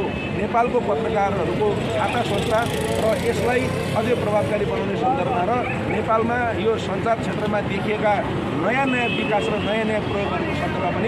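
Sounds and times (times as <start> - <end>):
man speaking: 0.0 - 11.0
street traffic hum: 0.0 - 11.0.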